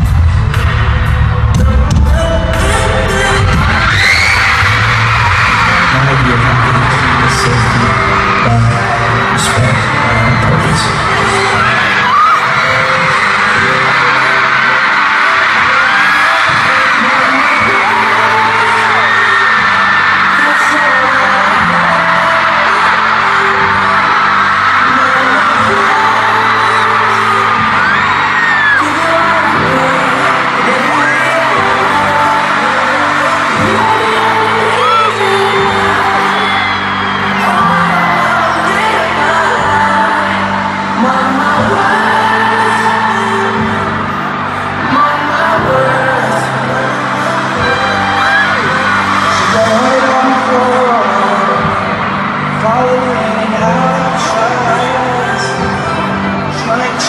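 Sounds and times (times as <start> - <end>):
crowd screaming and whooping: 0.0 - 57.0
loud amplified pop music: 0.0 - 57.0.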